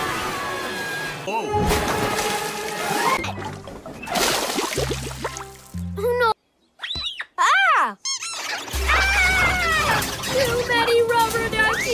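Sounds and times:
rubber duck squeaks: 6.8 - 7.4, 8.0 - 9.3.

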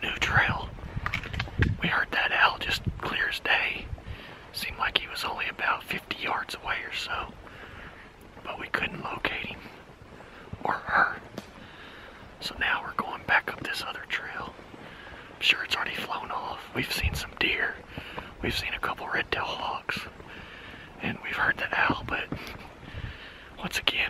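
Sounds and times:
man whispering: 0.0 - 0.8, 1.8 - 7.5, 8.3 - 11.3, 12.3 - 14.6, 15.3 - 22.6, 23.4 - 24.0.

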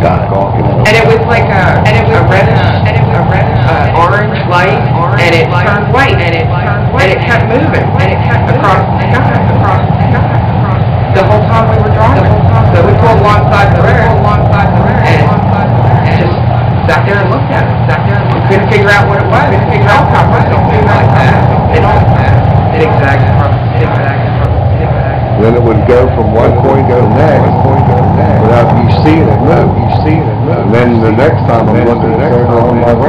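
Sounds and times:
indistinct man's voice: 0.0 - 1.3, 25.2 - 33.0
low droning rumble: 0.0 - 33.0.

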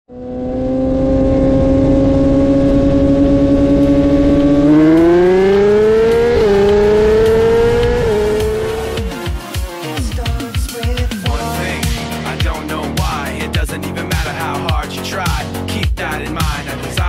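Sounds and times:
motorcycle engine revving: 0.0 - 9.6.

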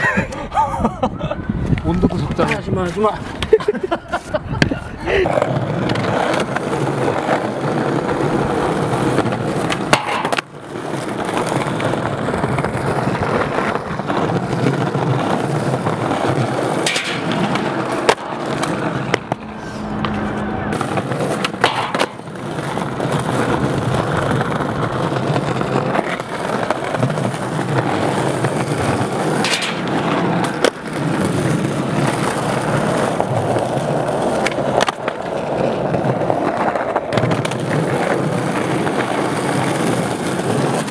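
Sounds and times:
skateboard wheels rolling on stone: 0.0 - 40.9
skateboard clacking on ground: 4.6 - 40.9.

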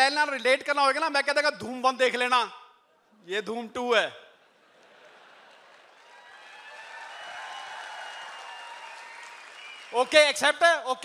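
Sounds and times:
audience applauding: 5.2 - 10.4.

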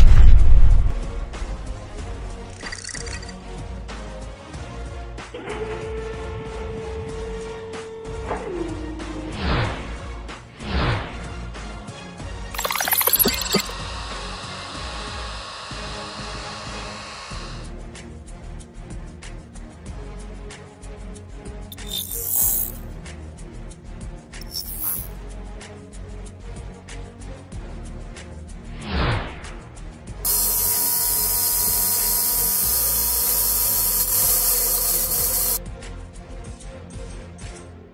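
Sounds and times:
loud steady hiss: 30.3 - 35.6.

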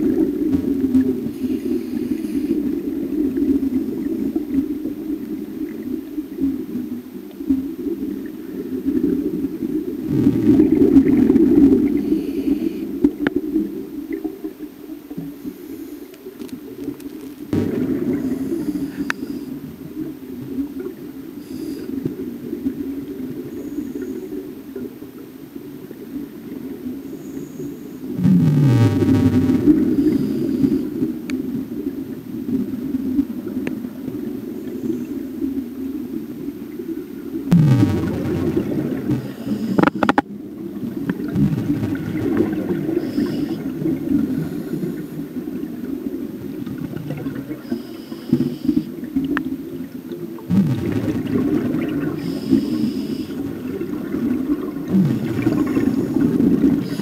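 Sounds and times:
underwater low rushing: 0.0 - 57.0
regulator air bubbling: 9.9 - 13.3, 17.5 - 20.3, 28.2 - 31.6, 37.5 - 49.4, 50.4 - 57.0.

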